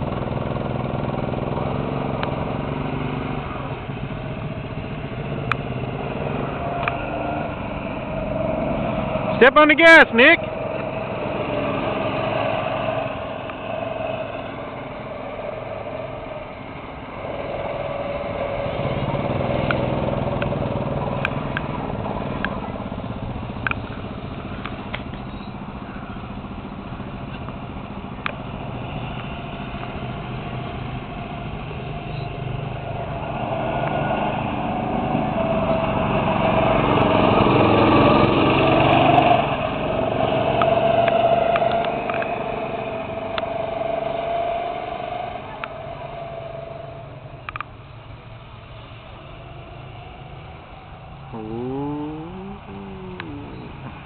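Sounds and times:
go-kart engines accelerating: 0:00.0 - 0:54.0.

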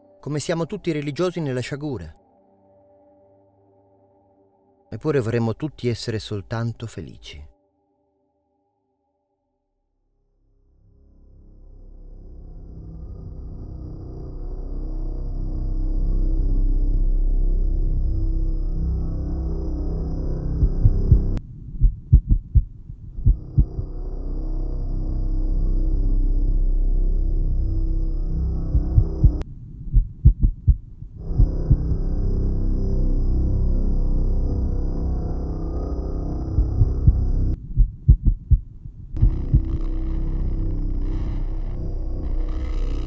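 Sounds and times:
ambient film music: 0:00.0 - 0:21.4, 0:23.2 - 0:29.5, 0:31.2 - 0:37.6, 0:39.2 - 0:43.0
low heartbeat-like thumps: 0:20.4 - 0:24.0, 0:28.5 - 0:32.1, 0:36.4 - 0:43.0.

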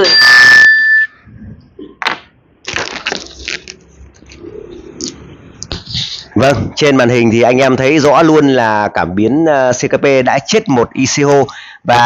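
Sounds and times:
electronic chime: 0:00.0 - 0:01.3.

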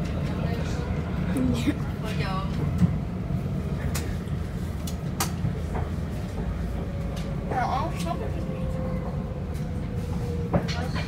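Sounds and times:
train rumble inside carriage: 0:00.0 - 0:11.0.

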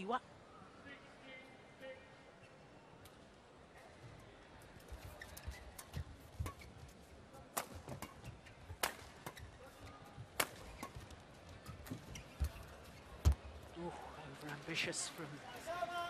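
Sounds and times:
racket hitting shuttlecock: 0:07.6 - 0:09.5, 0:10.4 - 0:11.0.

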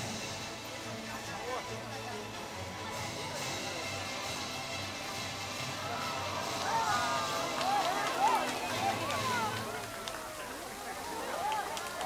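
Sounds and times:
fountain water jets hissing: 0:00.0 - 0:12.0.

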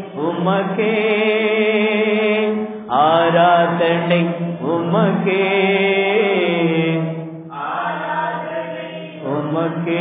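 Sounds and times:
voices singing worship song: 0:00.0 - 0:10.0.

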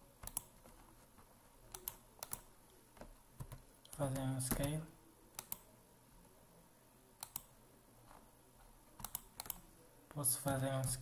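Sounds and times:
computer mouse clicks: 0:00.2 - 0:00.8, 0:01.7 - 0:02.5, 0:03.4 - 0:05.7, 0:07.2 - 0:07.5, 0:09.0 - 0:09.6
keyboard typing: 0:00.2 - 0:00.9, 0:01.7 - 0:04.8, 0:09.0 - 0:09.7.

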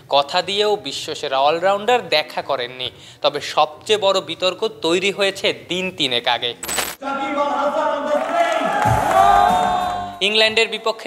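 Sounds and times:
man narrating: 0:00.0 - 0:08.3, 0:10.2 - 0:11.0.

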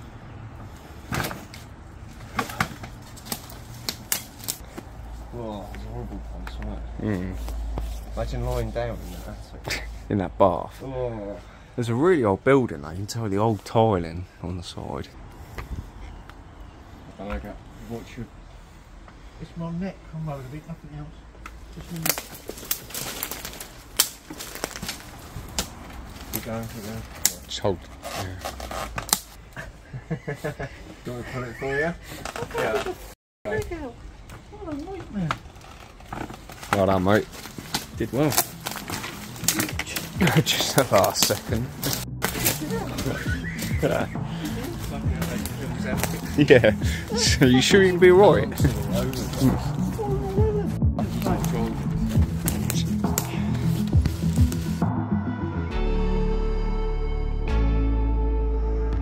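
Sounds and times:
twigs cracking underfoot: 0:02.2 - 0:04.9, 0:21.8 - 0:27.5, 0:34.2 - 0:47.3, 0:51.0 - 0:54.8
man's voice: 0:39.5 - 0:41.8, 0:42.7 - 0:53.5.

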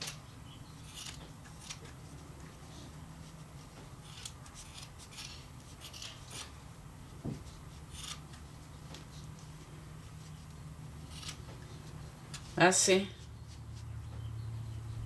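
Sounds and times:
scissors snipping yarn: 0:00.0 - 0:02.0, 0:03.7 - 0:06.6, 0:07.5 - 0:09.5.

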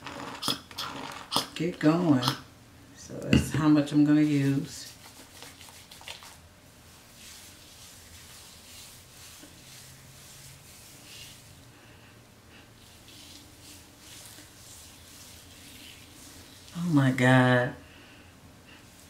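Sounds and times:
fingers squishing mousse through hair: 0:04.8 - 0:06.4, 0:12.8 - 0:16.8.

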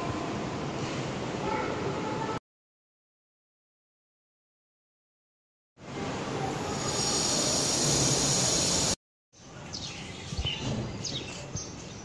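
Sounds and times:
loud background noise: 0:00.0 - 0:02.4, 0:05.8 - 0:11.9
outdoor ambience: 0:05.8 - 0:12.0.

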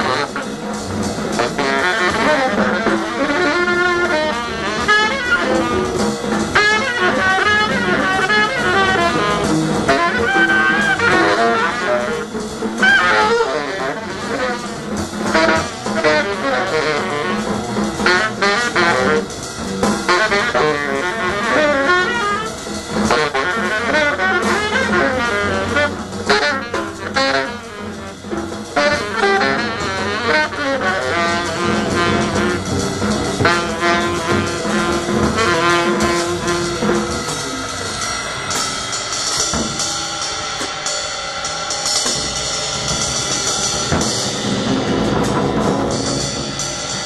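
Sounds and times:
free jazz saxophone: 0:00.0 - 0:41.1.

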